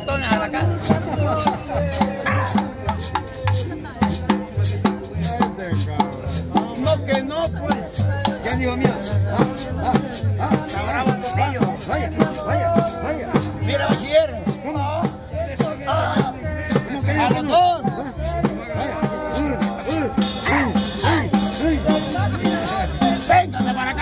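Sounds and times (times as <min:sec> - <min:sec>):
double bass pulsing beat: 0:00.0 - 0:24.0
drums: 0:00.0 - 0:24.0
rattling percussion: 0:00.0 - 0:24.0
person singing: 0:00.6 - 0:03.8, 0:07.5 - 0:24.0.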